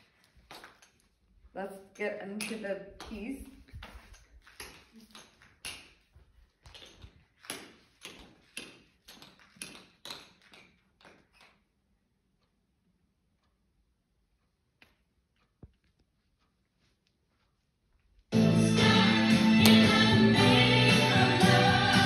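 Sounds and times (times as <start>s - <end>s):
tap shoes on hard floor: 2.4s - 11.4s.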